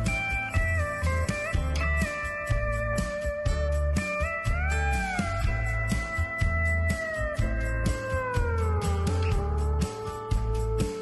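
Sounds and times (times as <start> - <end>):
steady low beat: 0.0 - 11.0.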